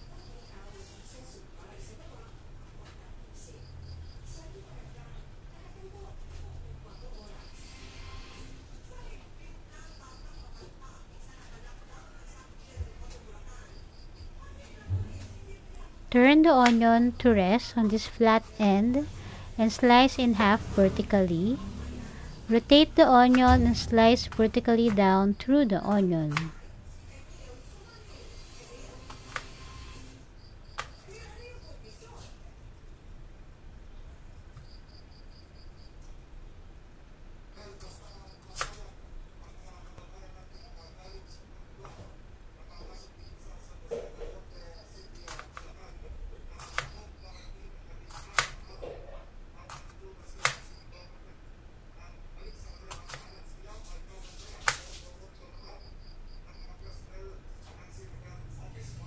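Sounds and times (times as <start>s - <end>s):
knife slicing onion: 46.6s - 47.0s, 48.1s - 48.7s.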